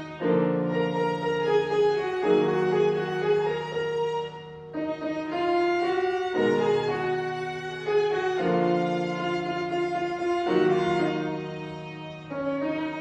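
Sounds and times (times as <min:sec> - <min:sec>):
violins and piano playing: 0:00.0 - 0:13.0.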